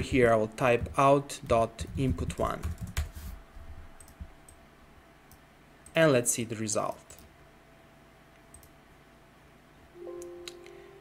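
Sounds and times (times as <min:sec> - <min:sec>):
computer mouse clicks: 0:04.0 - 0:04.6, 0:08.4 - 0:08.8.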